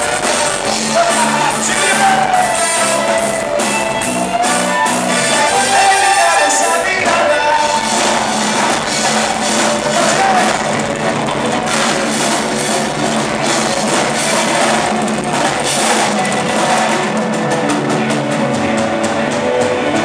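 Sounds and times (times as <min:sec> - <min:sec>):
drum kit: 0:00.0 - 0:20.0
electric guitar: 0:00.0 - 0:20.0
live band playing rock pop: 0:00.0 - 0:20.0.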